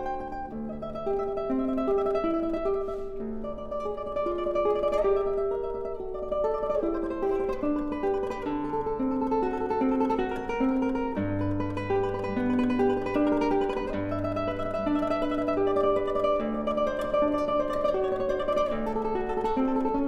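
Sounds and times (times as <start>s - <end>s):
classical guitar tremolo: 0.0s - 20.0s.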